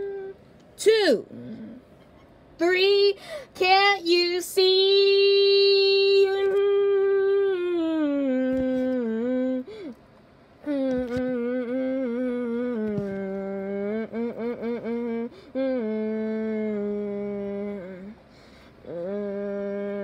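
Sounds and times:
person humming a melody: 0.0s - 0.4s, 1.3s - 1.8s, 4.7s - 10.0s, 10.6s - 18.2s, 18.8s - 20.0s.

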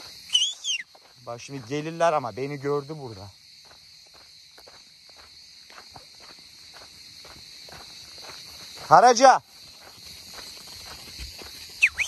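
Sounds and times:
footsteps crunching on dirt: 0.0s - 12.0s
insects chirring: 0.0s - 12.0s.

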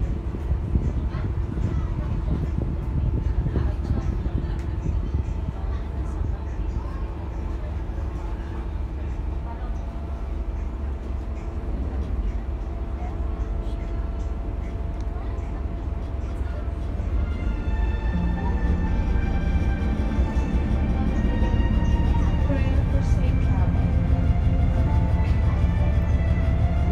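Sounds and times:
ferry engines rumbling: 0.0s - 26.9s
music: 16.4s - 26.9s.

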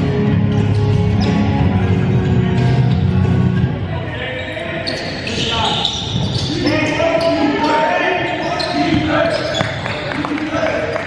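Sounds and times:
bass-heavy music: 0.0s - 3.9s.

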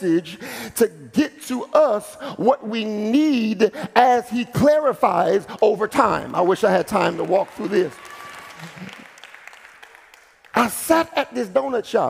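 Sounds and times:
congregation applauding: 6.0s - 11.2s.

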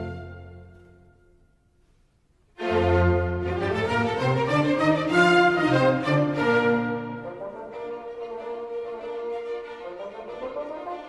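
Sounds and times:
symphony orchestra playing: 0.0s - 1.5s, 2.5s - 11.0s.

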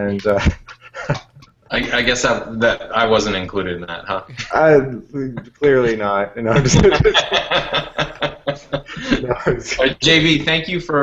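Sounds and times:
men laughing: 0.1s - 10.0s.

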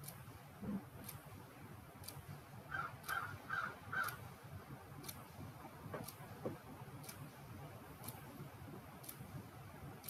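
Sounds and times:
faint regular tick: 1.0s - 1.2s, 2.0s - 2.2s, 3.0s - 3.2s, 5.0s - 5.3s, 5.9s - 7.4s, 8.0s - 8.2s, 9.0s - 9.4s
crow cawing: 2.7s - 4.2s.

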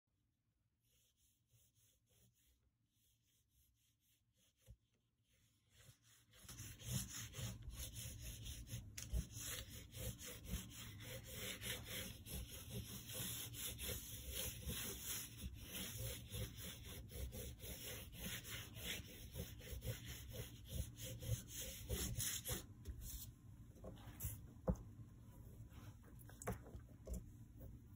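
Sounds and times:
oil pastel rubbing on paper: 0.8s - 23.3s.

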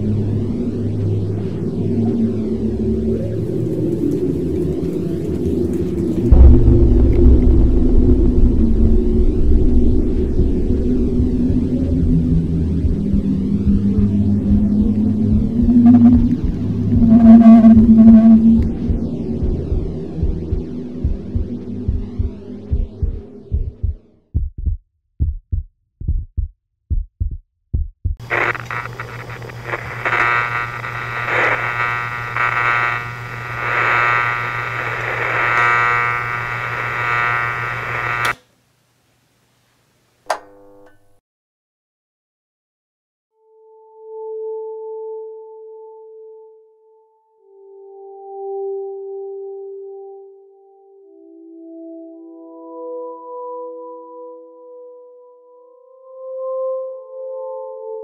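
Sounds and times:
low droning held tones: 0.0s - 23.8s, 28.2s - 38.4s
higher sustained tone: 6.3s - 19.4s.

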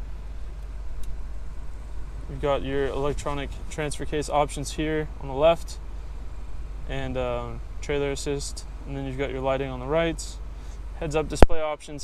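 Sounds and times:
low rumble inside car cabin: 0.0s - 12.0s.

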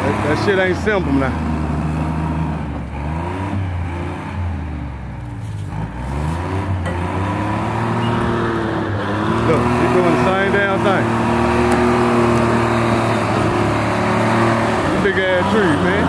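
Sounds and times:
diesel engine revving under load: 0.0s - 16.0s.

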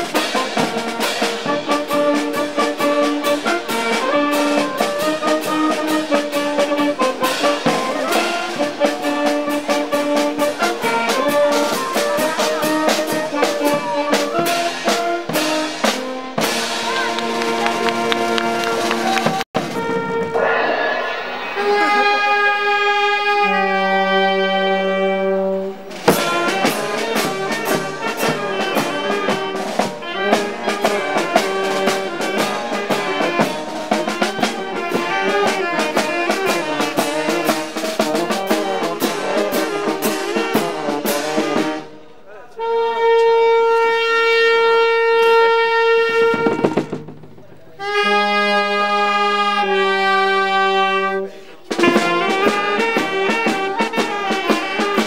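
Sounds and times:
street wind band playing: 0.0s - 55.0s.

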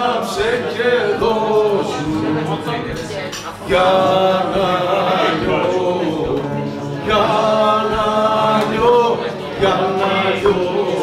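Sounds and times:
lyra lute and drum music: 0.0s - 11.0s
man singing: 0.0s - 11.0s.

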